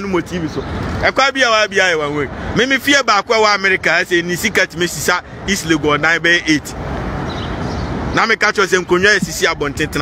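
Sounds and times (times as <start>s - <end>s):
man speaking: 0.0s - 6.8s, 8.1s - 10.0s
low rumbling noise with hiss: 0.0s - 10.0s.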